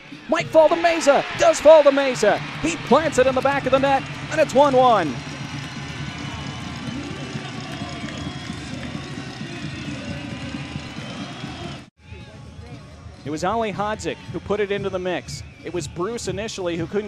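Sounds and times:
stadium crowd voices: 0.0s - 16.9s.

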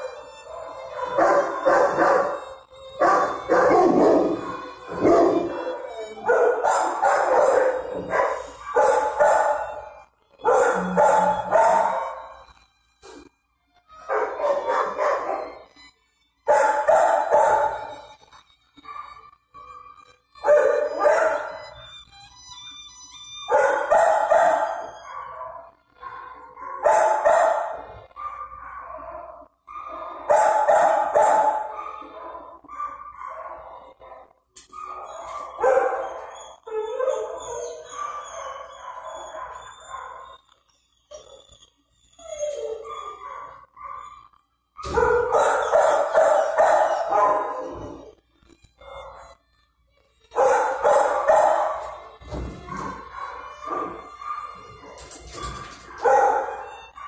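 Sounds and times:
dogs barking and howling: 0.0s - 12.6s, 13.9s - 15.8s, 16.4s - 21.9s, 23.4s - 49.4s, 50.3s - 57.0s.

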